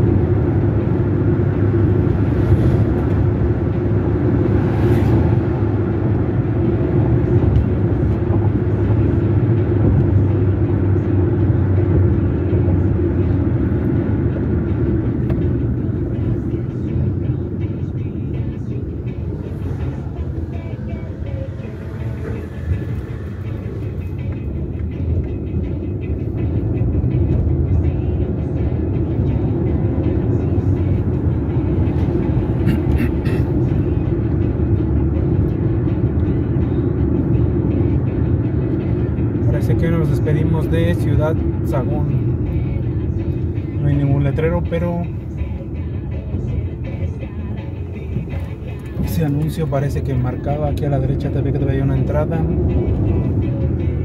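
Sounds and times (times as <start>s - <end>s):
car engine drone: 0.0s - 54.0s
tyres on the road: 0.0s - 54.0s.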